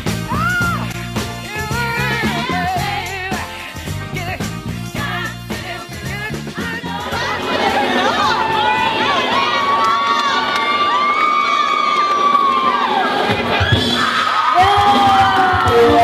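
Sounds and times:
women screaming and cheering: 0.2 - 0.9, 7.1 - 16.0.

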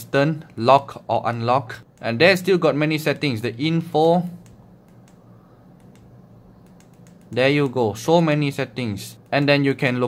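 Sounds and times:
steady low hum: 0.0 - 10.0
small button clicks: 5.8 - 7.8.

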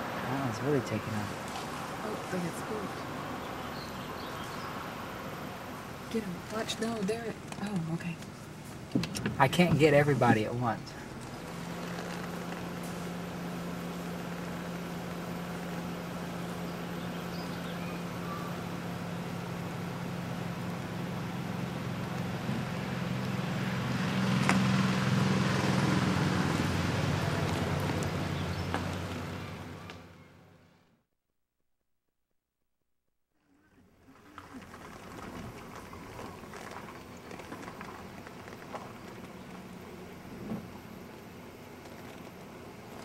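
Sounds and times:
vehicle engine humming: 0.0 - 31.0, 33.4 - 43.0.

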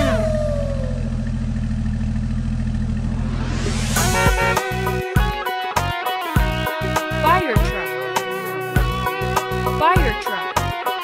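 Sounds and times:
cartoon engine rumble: 0.0 - 5.2
downward sliding tone: 3.0 - 5.2.

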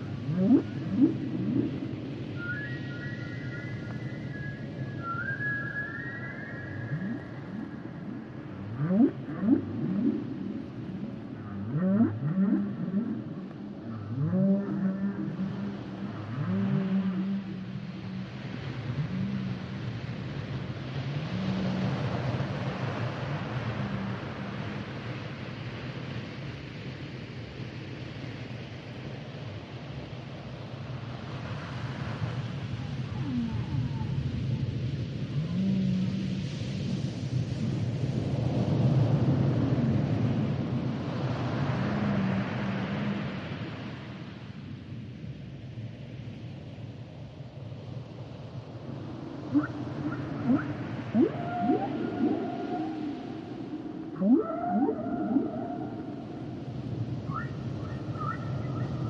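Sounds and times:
whale low moans: 0.0 - 3.9, 6.3 - 25.1, 33.1 - 37.9, 40.8 - 44.2, 49.0 - 57.5
sea noise hiss: 0.0 - 59.0
whale rising whoops and cries: 0.2 - 10.8, 11.4 - 20.0, 21.1 - 24.9, 33.1 - 34.3, 35.3 - 37.0, 41.4 - 44.2, 49.2 - 59.0.

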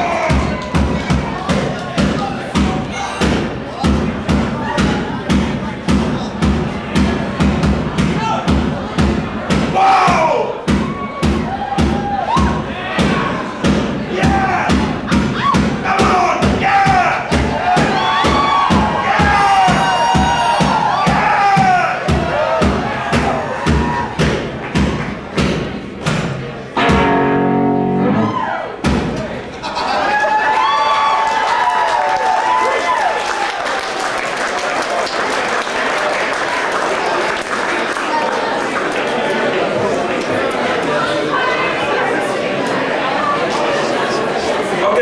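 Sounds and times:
drum kit hits: 0.0 - 29.4
voices shouting and wailing: 9.7 - 24.2
electric guitar: 26.8 - 28.4
live rock band playing: 26.8 - 28.4.

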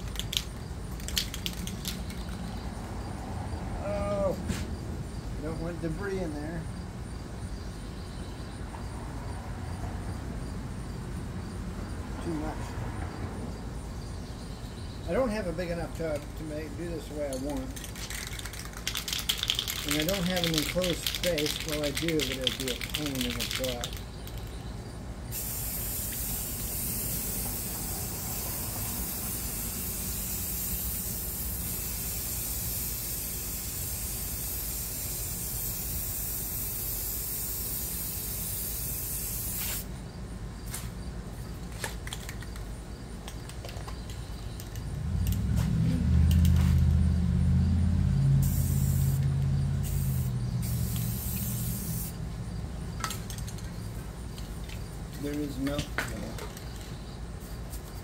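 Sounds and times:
spray paint can hissing: 0.0 - 3.0, 17.5 - 24.6, 25.3 - 39.9, 48.4 - 52.2.

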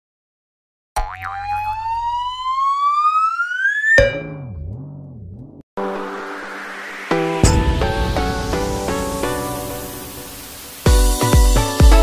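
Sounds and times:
synthetic tone rising in pitch: 1.0 - 9.2
sudden hit: 7.4 - 9.6.

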